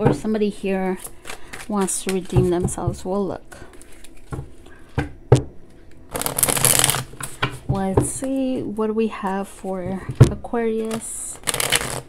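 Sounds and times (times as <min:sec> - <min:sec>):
cards being shuffled: 0:00.9 - 0:02.6, 0:03.7 - 0:04.7, 0:06.0 - 0:07.4, 0:10.8 - 0:12.0.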